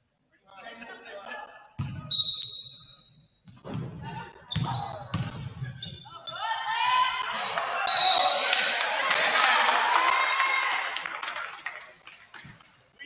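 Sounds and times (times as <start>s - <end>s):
voices echoing in gym: 0.2s - 13.0s
high whistle: 2.1s - 3.3s, 7.9s - 8.6s
basketball bouncing on wood floor: 4.5s - 5.5s.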